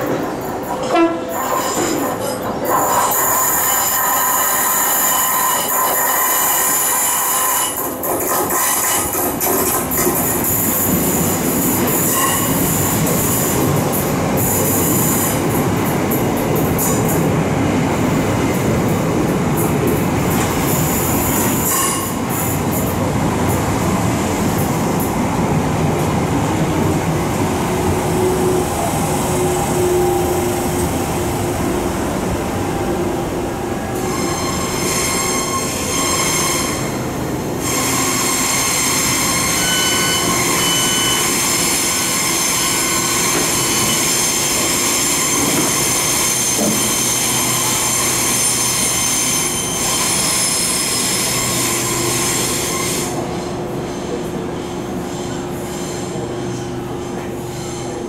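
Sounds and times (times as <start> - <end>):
train carriages rumbling past: 0.0 - 58.0
train wheels squealing: 0.4 - 9.2, 10.2 - 13.6, 20.6 - 22.6, 33.9 - 58.0.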